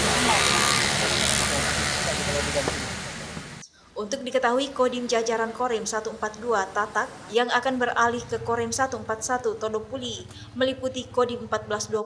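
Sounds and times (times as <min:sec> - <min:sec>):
steady outdoor rushing noise: 0:00.0 - 0:03.6.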